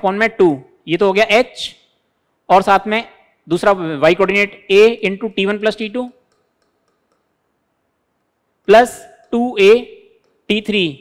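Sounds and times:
stylus tapping a screen: 0:05.9 - 0:10.8.

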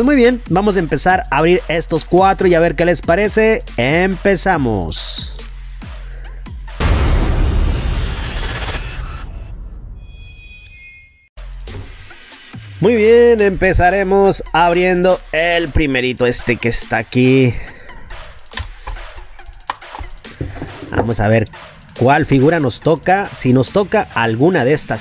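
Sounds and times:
low background music: 0:00.0 - 0:06.9, 0:11.4 - 0:25.0.

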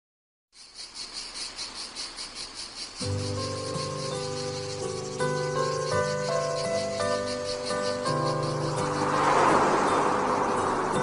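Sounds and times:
high insect chirping: 0:00.5 - 0:11.0.

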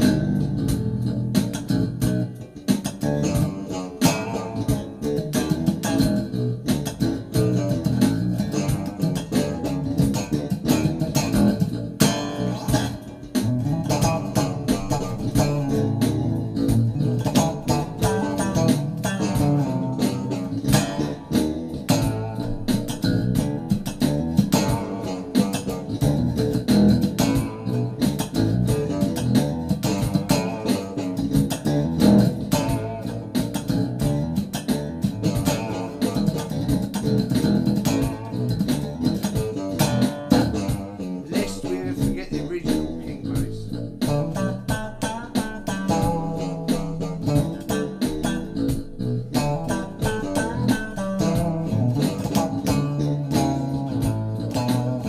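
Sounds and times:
slap bass guitar: 0:00.0 - 0:55.0.

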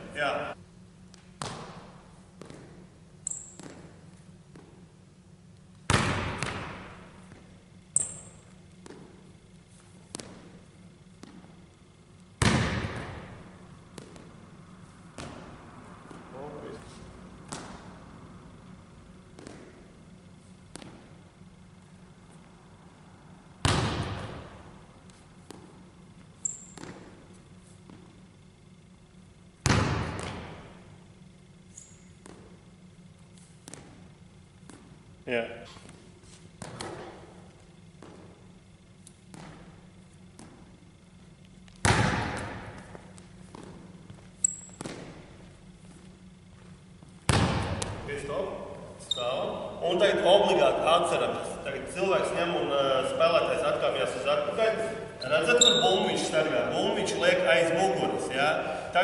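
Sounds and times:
basketball bouncing on hardwood floor: 0:01.4 - 0:02.8, 0:03.4 - 0:04.8, 0:05.9 - 0:07.4, 0:12.4 - 0:14.4, 0:19.3 - 0:19.8, 0:20.7 - 0:21.1, 0:23.6 - 0:24.5, 0:26.5 - 0:27.2, 0:29.6 - 0:30.7, 0:32.2 - 0:32.6, 0:39.3 - 0:40.7, 0:41.7 - 0:45.3, 0:47.2 - 0:48.1
sneaker squeaks: 0:01.4 - 0:04.8, 0:06.4 - 0:11.8, 0:24.0 - 0:28.6, 0:31.6 - 0:35.0, 0:35.6 - 0:49.8, 0:54.8 - 0:56.4.

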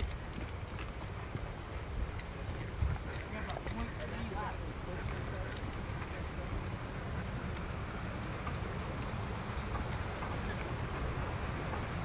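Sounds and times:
faint voices: 0:01.7 - 0:11.0.

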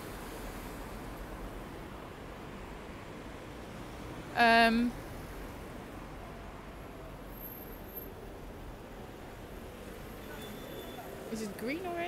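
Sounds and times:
hum of city traffic: 0:00.0 - 0:12.0.

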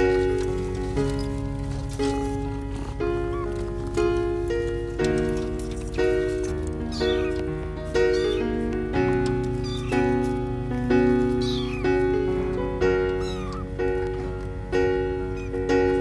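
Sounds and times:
cat meowing: 0:03.1 - 0:03.7, 0:06.7 - 0:13.9, 0:15.2 - 0:16.0.

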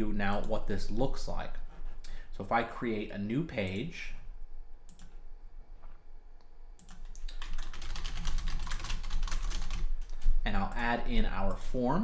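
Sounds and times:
computer keyboard typing: 0:06.8 - 0:10.8.

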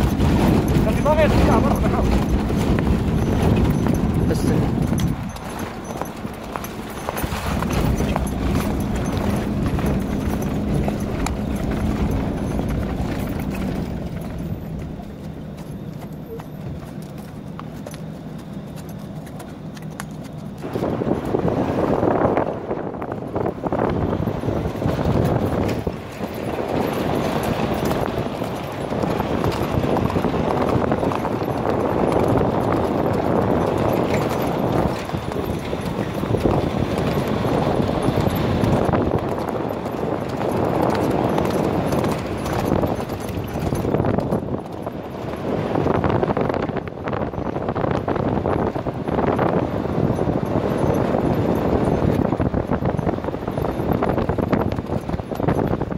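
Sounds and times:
car driving: 0:00.0 - 0:55.9
horse hoofbeats cantering: 0:00.0 - 0:55.9.

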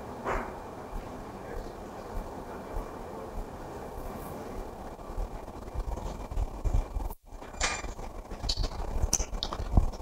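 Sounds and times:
low room rumble: 0:00.0 - 0:10.0.

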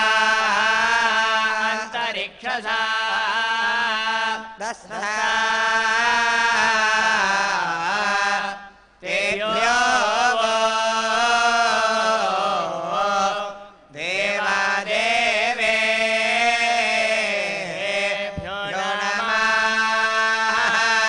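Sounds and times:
men chanting through a microphone: 0:00.0 - 0:21.0.

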